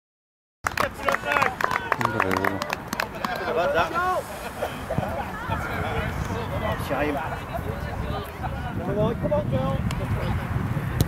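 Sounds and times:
voices shouting: 0.8s - 8.8s.

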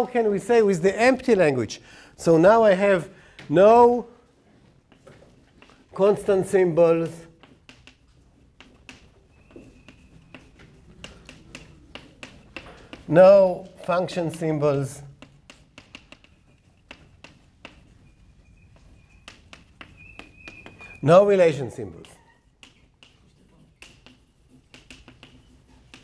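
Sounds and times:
chalk tapping on a blackboard: 4.8s - 26.0s.

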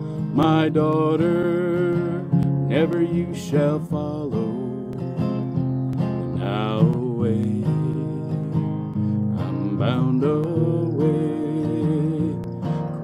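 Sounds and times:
man singing: 0.0s - 5.5s, 6.3s - 13.0s
acoustic guitar strumming: 0.0s - 13.0s.

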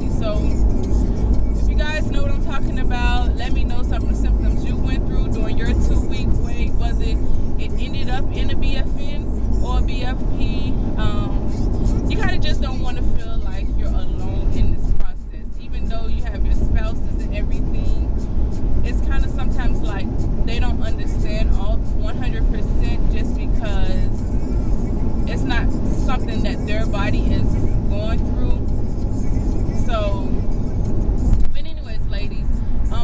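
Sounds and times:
woman talking: 0.0s - 0.6s, 1.7s - 11.5s, 12.1s - 18.1s, 18.8s - 24.2s, 25.3s - 28.6s, 29.8s - 30.4s, 31.5s - 33.0s
road and engine rumble: 0.0s - 33.0s.

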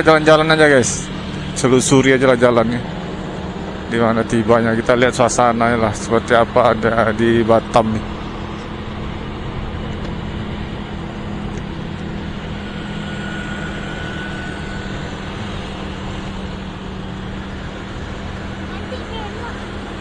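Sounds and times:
motorcycle engine running: 0.0s - 20.0s
road noise: 0.0s - 20.0s.

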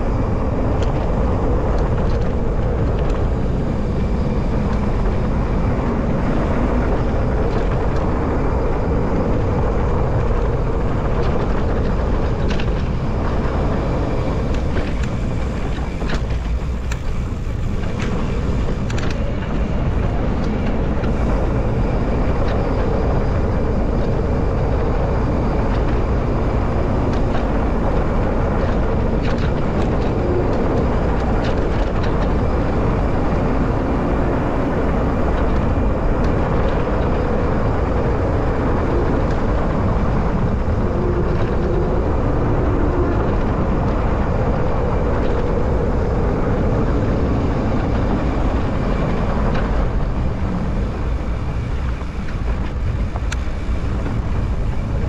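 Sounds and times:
bike tyres rolling on dirt road: 0.0s - 55.0s
grit and gravel ticks: 0.0s - 55.0s
wind rumble on microphone: 0.0s - 55.0s.

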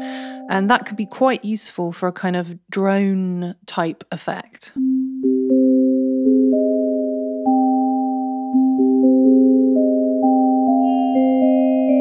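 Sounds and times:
synthesizer sine-wave chords: 4.8s - 12.0s.

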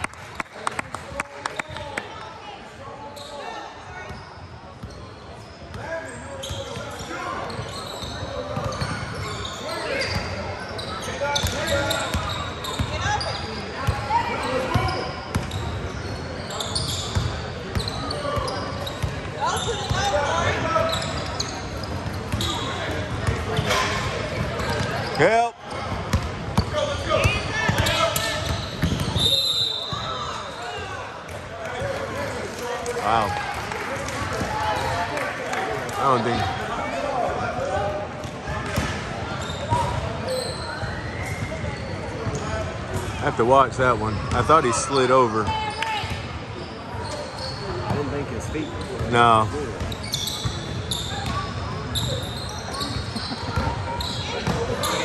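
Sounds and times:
high whistle: 29.2s - 30.2s.

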